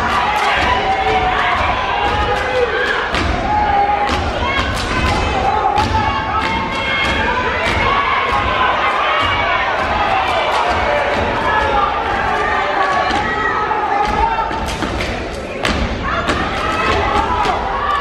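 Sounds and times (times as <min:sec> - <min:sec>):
people shouting: 0:00.0 - 0:18.0
claps and body slaps: 0:04.1 - 0:07.9.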